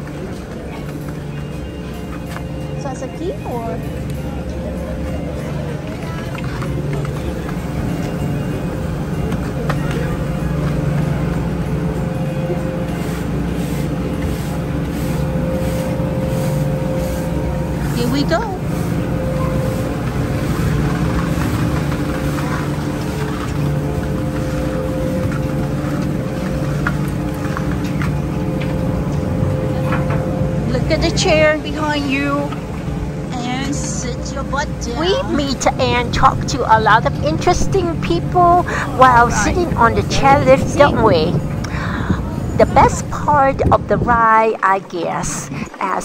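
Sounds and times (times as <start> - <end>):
machinery droning hum: 0.0 - 46.0.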